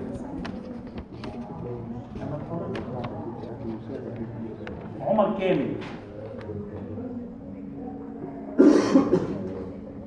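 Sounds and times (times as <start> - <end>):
person coughing: 8.6 - 9.5.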